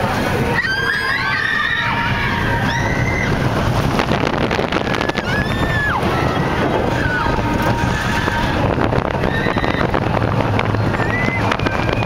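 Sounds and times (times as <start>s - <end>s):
rush of wind and train noise: 0.0s - 12.0s
riders screaming: 0.5s - 3.5s, 4.8s - 8.6s, 9.2s - 10.0s.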